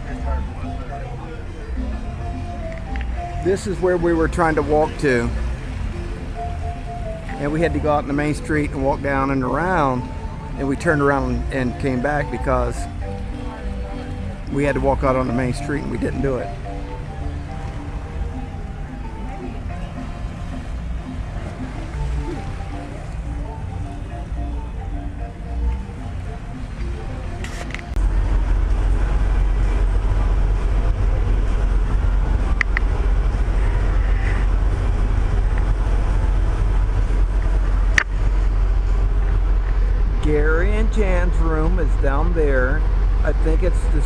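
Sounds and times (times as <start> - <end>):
faint music: 0.0 - 44.0
low rumble: 0.0 - 44.0
outdoor ambience: 4.4 - 44.0.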